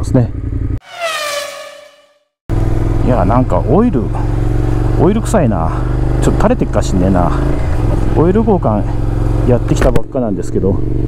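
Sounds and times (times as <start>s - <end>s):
falling swish transition effect: 0.8s - 2.2s
motorcycle engine running: 2.5s - 11.0s.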